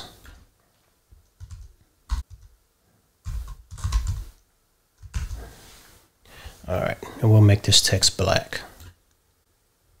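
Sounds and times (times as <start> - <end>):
keyboard typing: 1.3 - 2.6, 3.2 - 4.4, 5.0 - 5.4.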